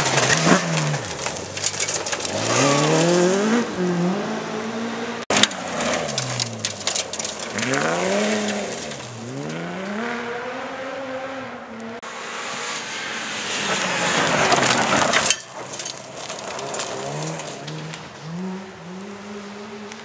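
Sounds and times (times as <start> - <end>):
gravel spraying from tyres: 0.0 - 3.6, 5.3 - 10.0, 12.2 - 19.9
rally car engines revving: 0.0 - 20.0.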